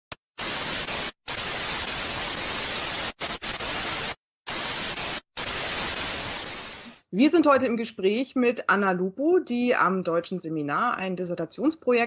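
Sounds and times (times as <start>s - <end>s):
television static hiss: 0.4s - 7.0s.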